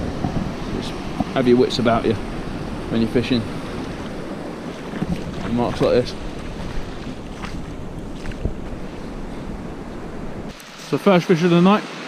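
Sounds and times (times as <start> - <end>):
wind buffeting microphone: 0.0 - 10.6
sea waves on rocky shore: 0.0 - 12.0.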